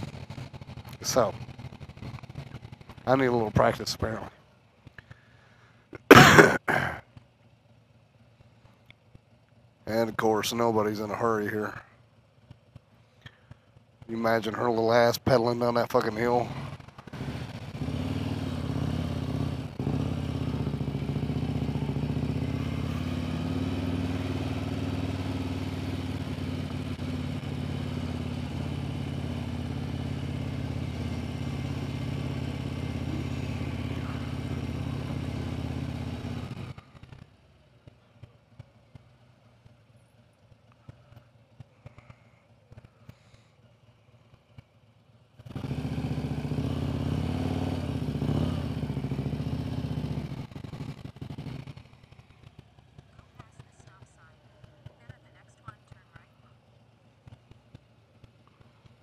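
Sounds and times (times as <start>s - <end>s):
motorcycle engine running: 0.0s - 59.0s.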